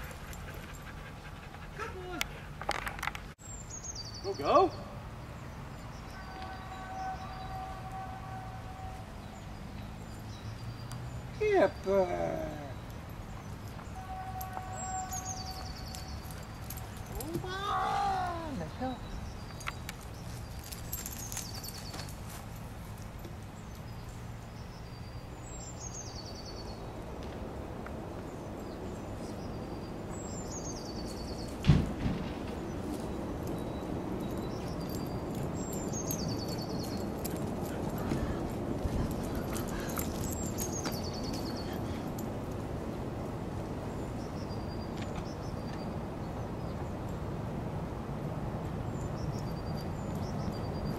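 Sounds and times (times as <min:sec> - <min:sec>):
outdoor background noise: 0:00.0 - 0:50.9
songbird singing: 0:00.0 - 0:50.9.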